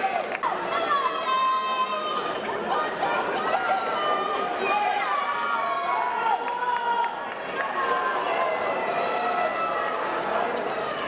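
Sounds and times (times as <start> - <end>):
distant crowd noise: 0.0 - 11.0
voices chattering and calling out: 0.0 - 11.0.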